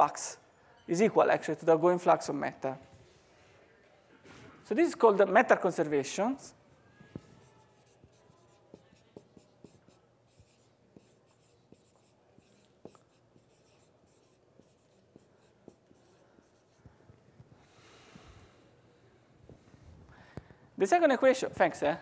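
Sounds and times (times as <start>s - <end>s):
marker writing on whiteboard: 7.1s - 17.2s.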